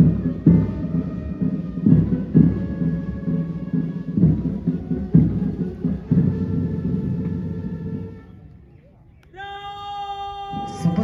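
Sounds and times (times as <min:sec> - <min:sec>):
parade band music: 0:00.0 - 0:08.4.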